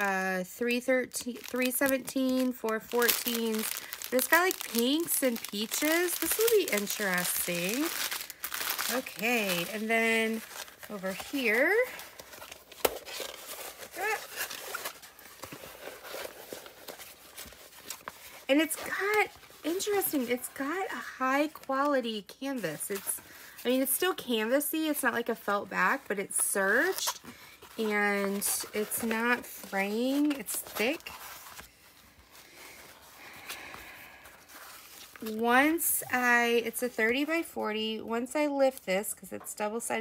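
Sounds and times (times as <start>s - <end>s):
plastic film rustling and crinkling: 1.1s - 20.8s, 21.4s - 37.3s.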